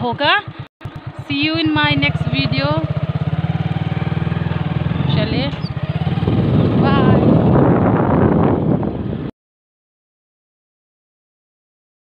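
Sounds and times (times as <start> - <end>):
motorcycle engine running: 0.0 - 9.3
rushing air: 4.2 - 9.3.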